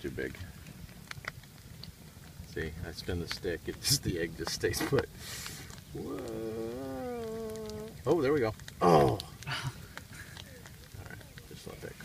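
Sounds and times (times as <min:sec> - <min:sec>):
person exclaiming whoa: 0:05.9 - 0:08.0.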